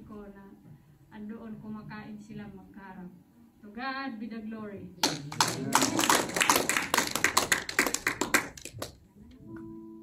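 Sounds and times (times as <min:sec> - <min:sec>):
congregation clapping: 0:05.0 - 0:09.0.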